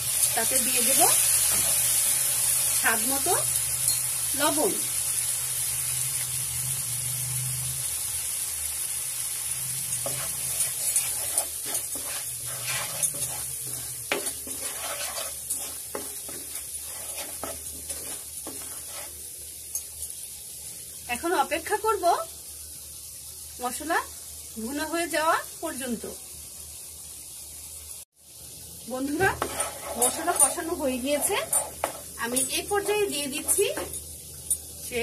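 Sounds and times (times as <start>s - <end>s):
spice paste sizzling in oil: 0.0s - 35.0s
spatula scraping a pan: 9.9s - 19.2s, 29.1s - 34.0s.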